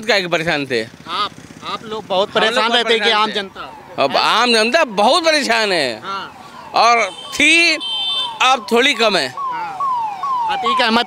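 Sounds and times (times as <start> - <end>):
man talking: 0.0 - 9.8, 10.5 - 11.0
traffic hum: 0.0 - 11.0.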